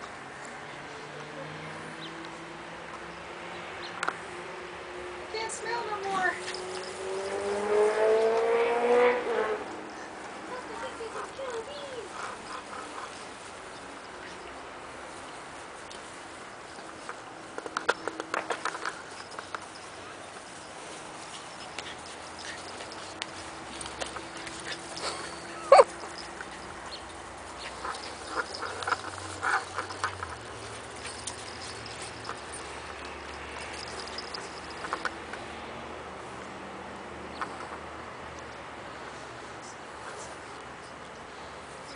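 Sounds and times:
puppies yipping: 0:18.8 - 0:35.2
puppy whining: 0:21.6 - 0:26.7
puppy whimpering: 0:24.2 - 0:26.3.

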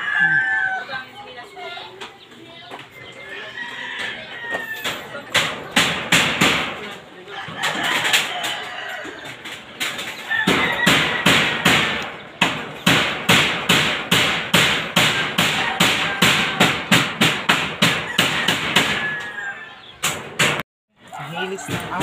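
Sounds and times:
hammer striking nails into wood: 0:05.3 - 0:06.9, 0:10.4 - 0:19.2, 0:20.0 - 0:20.6.

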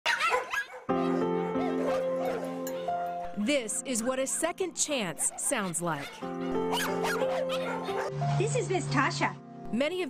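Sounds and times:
dogs barking: 0:00.1 - 0:08.4
music with held chords: 0:00.9 - 0:03.8, 0:06.2 - 0:10.0.

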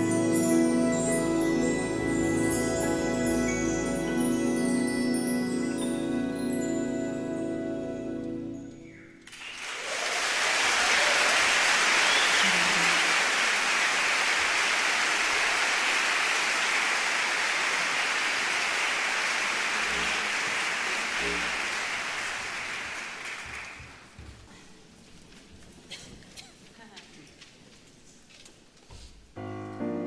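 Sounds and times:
audience applauding: 0:09.2 - 0:24.2.

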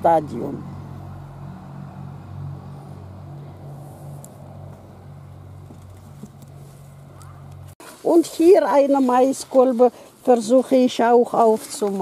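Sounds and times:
low motor hum: 0:00.0 - 0:07.8.

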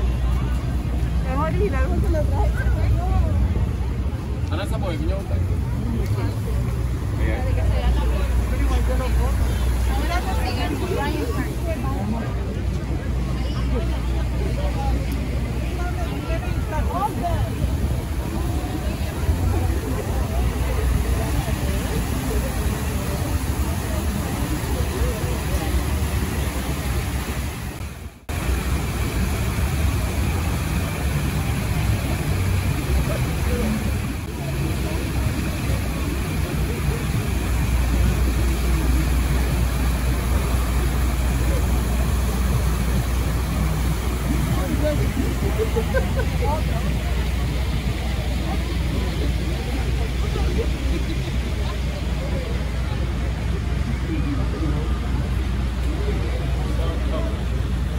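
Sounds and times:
fountain water falling: 0:00.0 - 0:57.9
passing traffic: 0:00.0 - 0:57.9
people's voices: 0:00.0 - 0:57.9.

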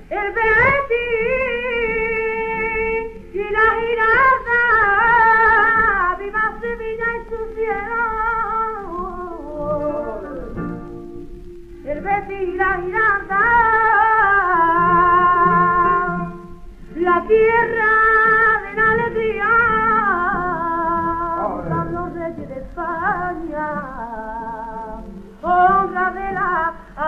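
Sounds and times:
guitar accompaniment: 0:00.0 - 0:27.0
woman singing flamenco: 0:00.0 - 0:27.0.

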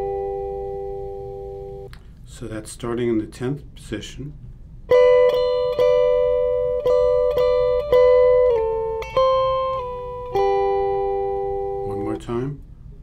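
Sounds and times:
clean electric guitar lick: 0:00.0 - 0:02.0, 0:04.9 - 0:12.0.

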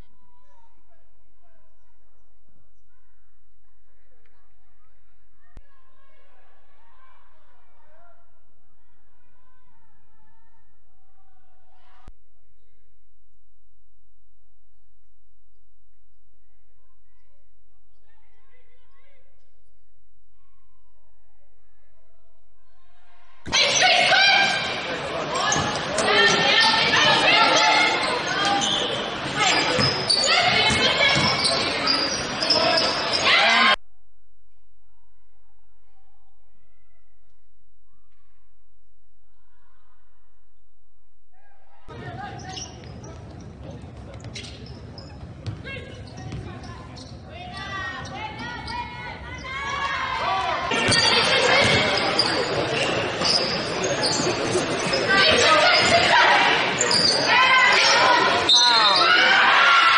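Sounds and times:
players and spectators calling out: 0:23.1 - 0:33.8, 0:41.3 - 0:59.9
sneaker squeaks: 0:25.3 - 0:33.7, 0:41.9 - 0:50.0, 0:50.7 - 0:59.3.

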